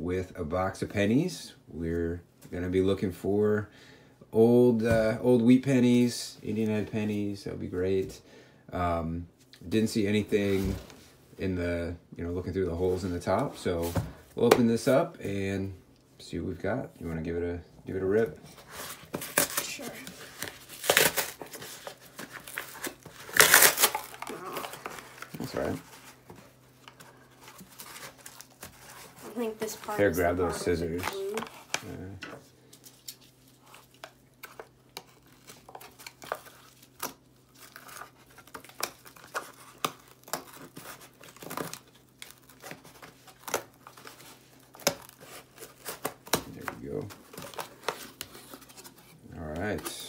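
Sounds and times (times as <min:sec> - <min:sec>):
cardboard box ripping: 0:18.8 - 0:26.0.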